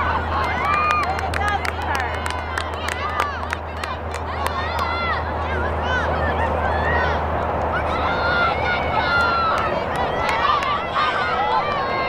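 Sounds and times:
crowd murmur: 0.0 - 12.0
people shouting calls: 0.0 - 12.0.

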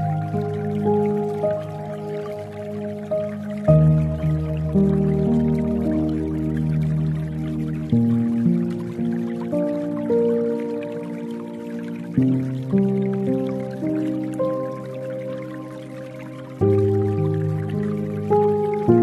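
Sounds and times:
dripping water: 0.0 - 19.0
soft piano chords: 0.0 - 19.0.

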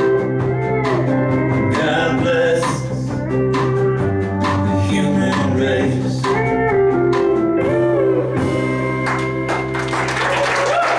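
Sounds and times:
live band playing: 0.0 - 10.9.

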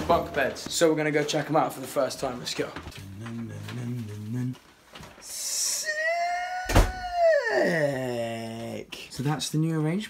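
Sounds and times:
person falsetto exclamation: 5.6 - 8.5.

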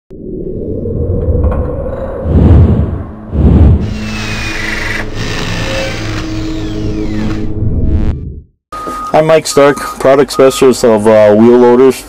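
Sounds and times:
mechanical drone: 0.1 - 8.5.

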